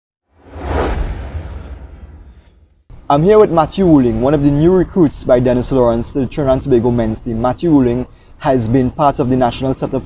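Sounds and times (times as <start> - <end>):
whoosh: 0.3 - 2.9
deep rumble: 0.4 - 3.0.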